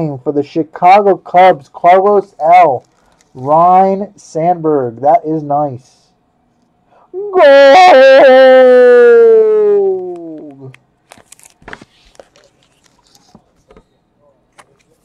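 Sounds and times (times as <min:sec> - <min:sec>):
plastic card sleeve rustling: 0:02.8 - 0:03.5, 0:11.0 - 0:13.9, 0:14.5 - 0:15.0
man shouting in excitement: 0:07.2 - 0:10.7.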